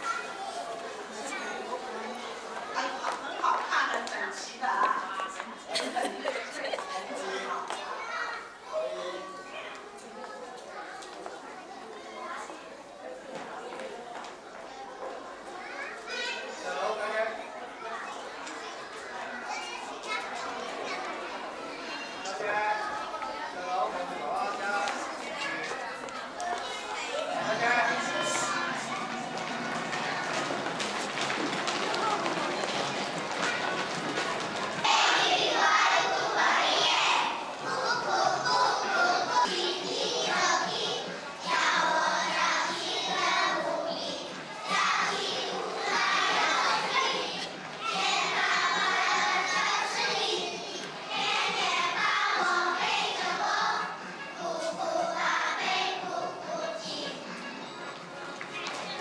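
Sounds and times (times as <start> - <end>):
children chattering and calling out: 0.0 - 59.0.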